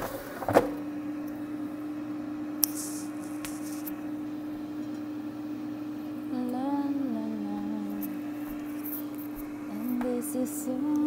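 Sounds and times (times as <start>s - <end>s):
air fryer fan hum: 0.0s - 11.0s
woman humming a tune: 6.3s - 8.2s, 9.7s - 11.0s.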